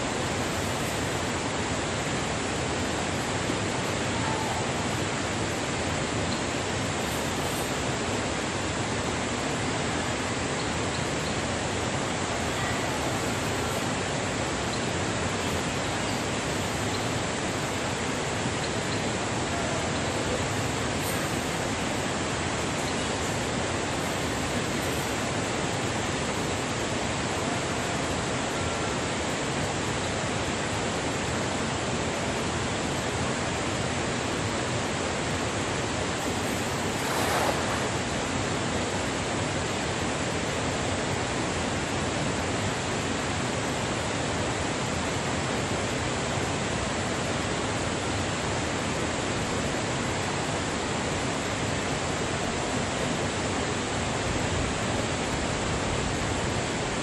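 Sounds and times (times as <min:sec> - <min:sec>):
stream water rushing: 0:00.0 - 0:57.0.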